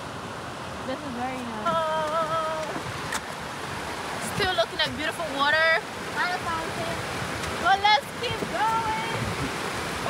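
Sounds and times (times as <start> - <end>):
river rushing over rapids: 0.0 - 10.0.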